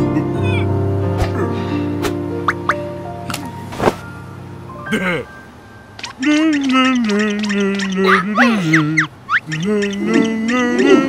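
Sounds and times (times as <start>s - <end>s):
cartoon background music: 0.0s - 3.5s, 4.8s - 11.0s.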